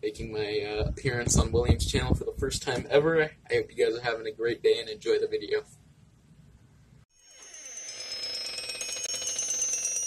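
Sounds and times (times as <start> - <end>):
high tones pulsing rapidly: 7.1 - 10.0.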